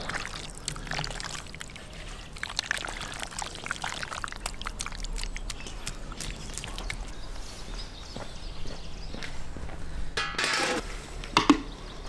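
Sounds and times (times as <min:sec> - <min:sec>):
hands kneading wet meat: 0:00.0 - 0:07.7.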